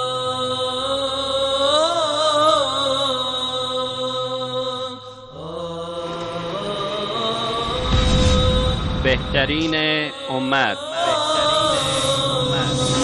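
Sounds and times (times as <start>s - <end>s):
sung chant with wavering notes: 0.0s - 13.0s.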